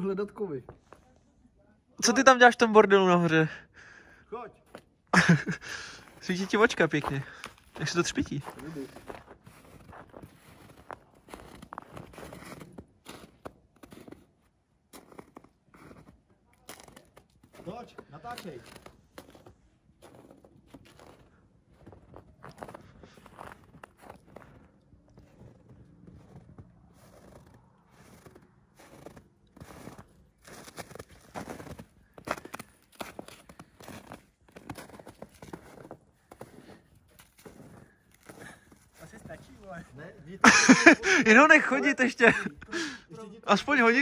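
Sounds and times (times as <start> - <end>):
footsteps crunching through snow: 4.6 - 42.4.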